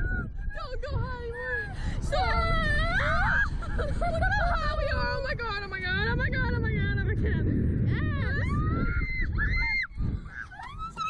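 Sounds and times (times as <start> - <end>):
wind rush on microphone: 0.0 - 11.0
girls squealing: 8.2 - 11.0.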